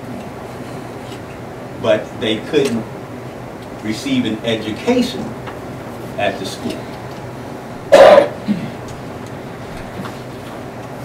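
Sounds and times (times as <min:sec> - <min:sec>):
person coughing: 0:07.9 - 0:08.8.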